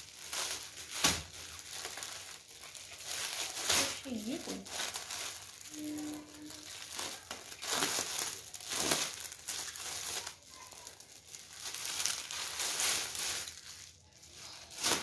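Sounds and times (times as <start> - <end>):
plastic wrapping crinkling: 0.0 - 15.0.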